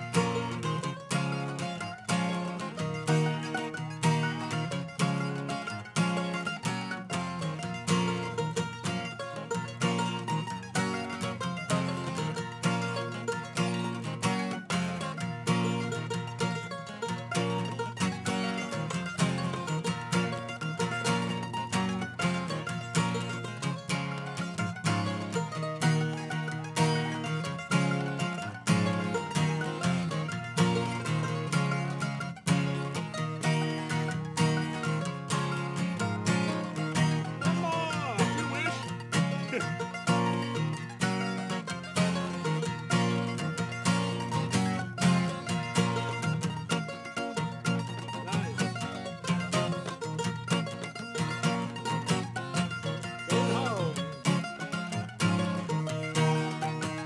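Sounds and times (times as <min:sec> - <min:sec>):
acoustic guitar chords: 0:00.0 - 0:57.0
mandolin picking: 0:00.0 - 0:57.0.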